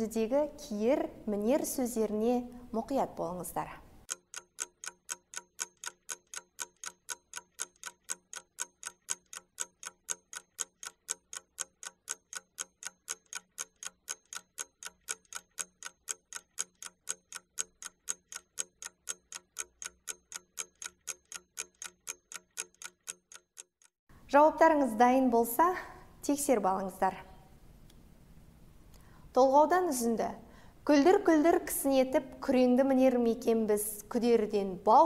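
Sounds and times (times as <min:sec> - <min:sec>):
clock ticking: 0:04.0 - 0:23.9.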